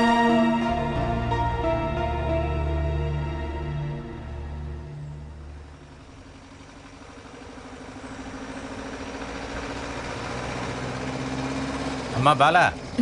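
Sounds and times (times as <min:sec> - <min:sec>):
car engine approaching: 0:00.0 - 0:13.0.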